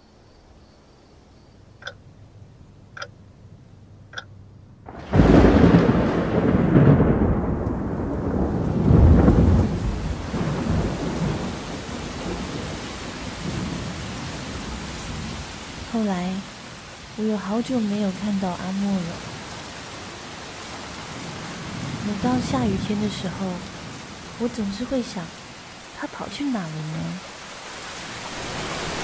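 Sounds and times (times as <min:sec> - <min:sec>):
faint clicks: 0:01.8 - 0:02.0, 0:04.1 - 0:04.3
heavy rain: 0:04.2 - 0:29.0
thunder clap and rumble: 0:04.8 - 0:15.9.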